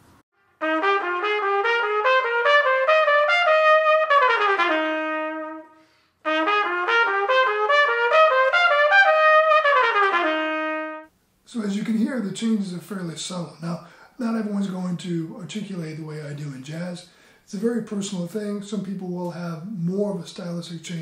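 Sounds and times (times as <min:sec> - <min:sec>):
solo trumpet playing: 0:00.4 - 0:11.1.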